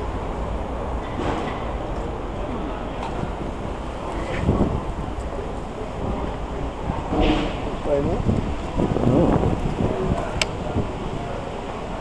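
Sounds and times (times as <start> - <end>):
faint voices: 0.0 - 12.0
traffic rumble: 0.0 - 12.0.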